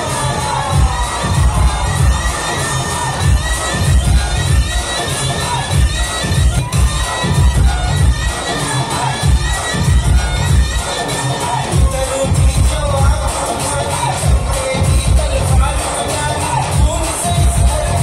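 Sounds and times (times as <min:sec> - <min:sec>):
crowd shouting and cheering: 0:00.0 - 0:18.0
dance music with heavy bass: 0:00.0 - 0:18.0.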